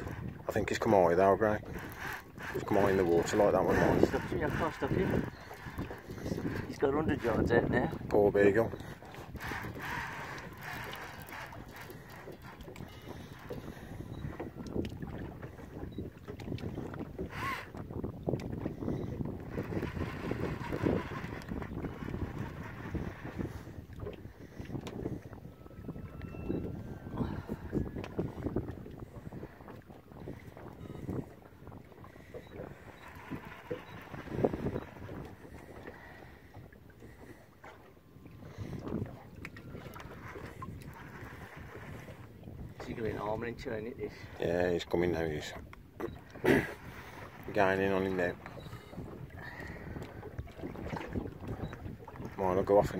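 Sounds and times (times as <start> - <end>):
water sloshing against hull: 0.0 - 52.9
wind buffeting microphone: 0.0 - 52.9.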